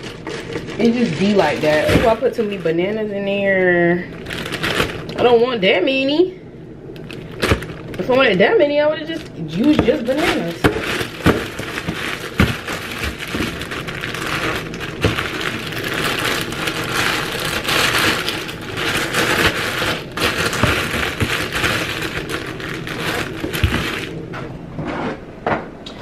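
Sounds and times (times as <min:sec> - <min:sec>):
plastic bag crinkling: 0:00.0 - 0:05.7, 0:06.9 - 0:24.3.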